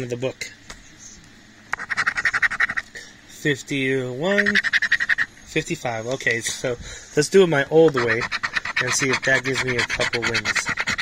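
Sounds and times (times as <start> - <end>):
coin scraping lottery ticket: 7.9 - 11.0.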